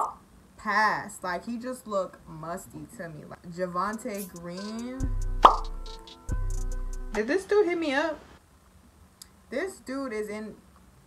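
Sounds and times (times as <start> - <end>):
music chord over deep bass: 4.9 - 7.3
rising bloop pop: 5.4 - 5.7.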